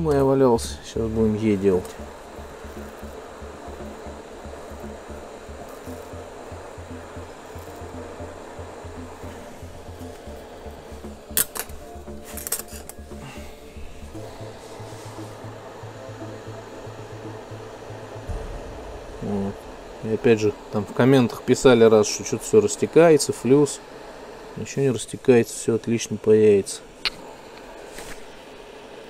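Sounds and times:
hot-air gun blowing: 1.7s - 22.2s.

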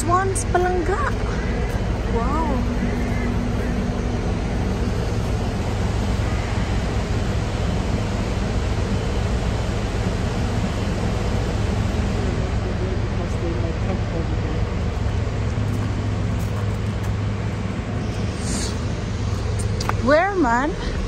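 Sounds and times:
rushing outdoor noise: 0.0s - 21.0s.

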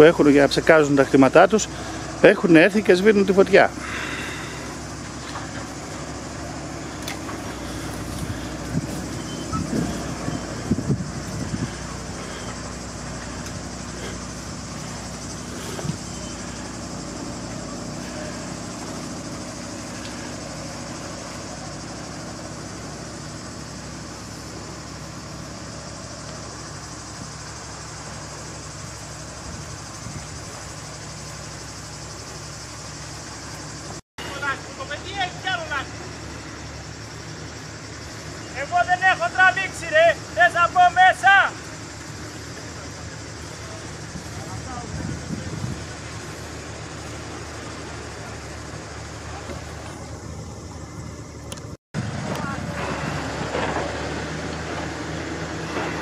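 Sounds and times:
crop-sprayer engine running: 0.0s - 56.0s
voices calling out: 0.0s - 56.0s.

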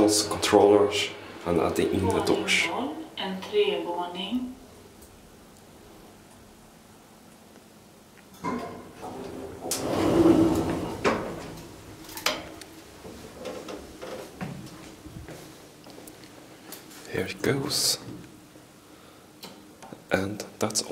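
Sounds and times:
elevator doors sliding open: 8.4s - 12.5s.

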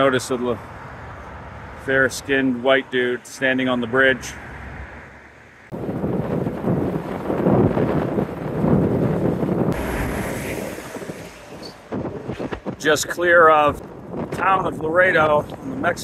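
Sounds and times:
wind on microphone: 5.7s - 16.0s
freight train rumbling past: 8.2s - 14.2s.

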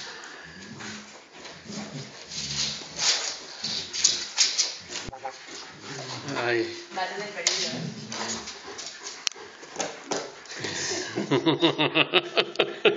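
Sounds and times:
dogs growling: 0.0s - 11.5s.

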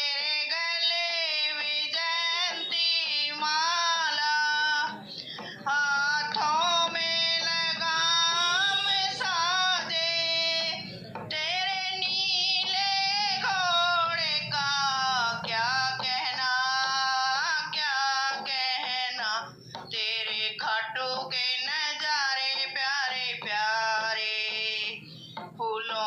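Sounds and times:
woman singing devotional song: 0.0s - 26.0s.

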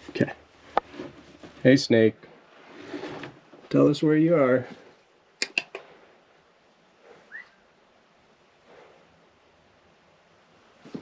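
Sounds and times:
sharp clicks: 5.4s - 5.9s
whistle-like chirp: 7.3s - 7.6s.

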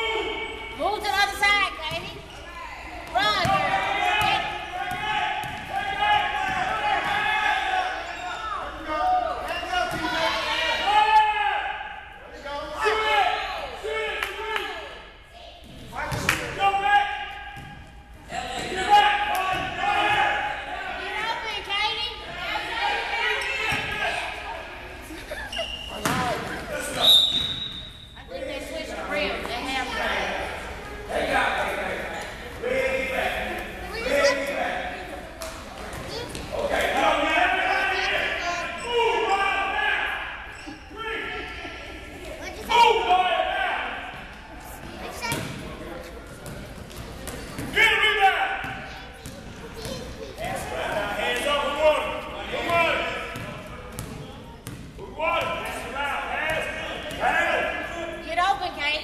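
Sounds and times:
voices shouting in a gymnasium: 0.0s - 59.0s
basketball bouncing: 1.8s - 2.2s, 3.0s - 5.7s, 26.0s - 26.4s, 45.3s - 45.6s, 53.4s - 54.9s
people shouting: 3.2s - 8.6s, 9.3s - 12.0s, 18.3s - 21.3s.

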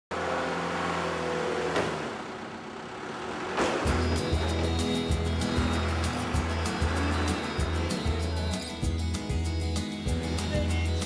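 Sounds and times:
vehicle engine humming: 0.1s - 11.0s
short rising sweep: 2.9s - 9.2s.

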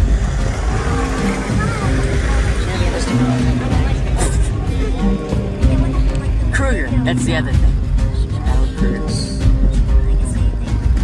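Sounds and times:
vehicle engine idling: 0.0s - 11.0s
voices murmuring: 0.0s - 11.0s.

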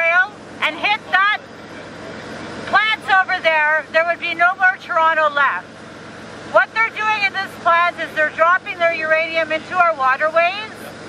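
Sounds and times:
woman speaking through a megaphone: 0.0s - 1.5s, 2.7s - 5.7s, 6.5s - 10.9s.

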